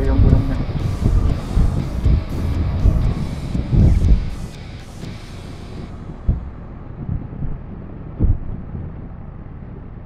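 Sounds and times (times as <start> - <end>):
low engine and road rumble: 0.0 - 10.0
low thumps: 0.0 - 10.0
wind rushing over microphone: 0.0 - 10.0.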